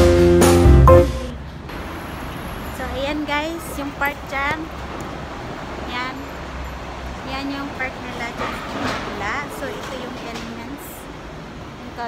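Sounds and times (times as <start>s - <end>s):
guitar music: 0.0s - 1.4s
distant traffic rumble: 1.3s - 12.0s
woman speaking: 2.8s - 4.7s, 5.9s - 6.3s, 7.2s - 11.1s.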